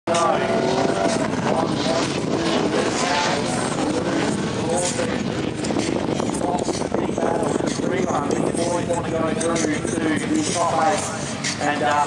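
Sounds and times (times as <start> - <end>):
car engines revving hard: 0.1 - 12.0.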